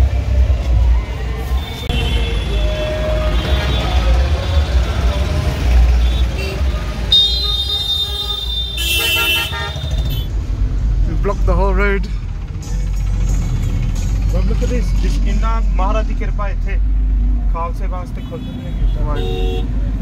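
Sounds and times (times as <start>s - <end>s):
traffic engine and road rumble: 0.0s - 20.0s
harsh horn blast: 1.6s - 4.7s, 5.9s - 10.3s, 18.2s - 19.8s
high-pitched car horn: 5.9s - 10.3s.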